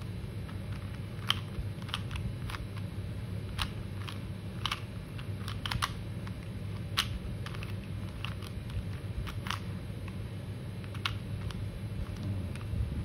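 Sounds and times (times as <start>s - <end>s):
puzzle cube layers clicking: 0.0s - 2.9s, 3.5s - 10.2s, 10.8s - 12.7s
steady low hum: 0.0s - 13.0s.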